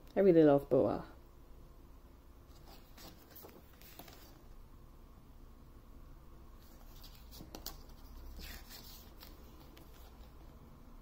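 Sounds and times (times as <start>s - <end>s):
book pages turning: 2.5s - 4.4s, 6.6s - 10.4s
paper rustle: 2.5s - 4.4s, 6.6s - 10.4s
soft paper clicks: 6.8s - 10.3s.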